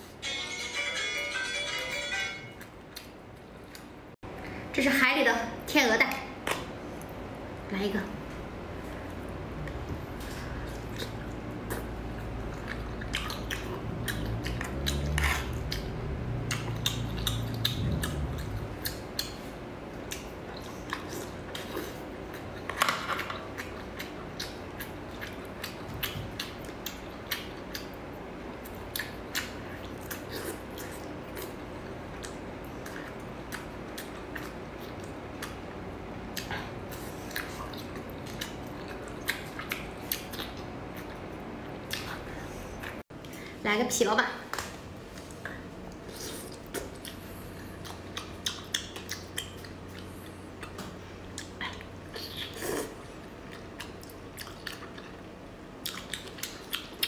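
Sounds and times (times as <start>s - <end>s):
wet chewing and slurping: 9.2s - 28.0s, 36.3s - 43.0s, 45.1s - 57.0s
sharp mouth clicks and smacks: 12.6s - 19.4s, 47.8s - 52.6s.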